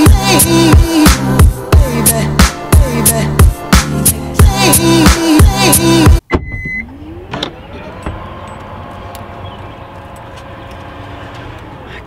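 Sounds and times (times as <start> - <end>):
background music: 0.0 - 6.2
short beep: 6.3 - 6.9.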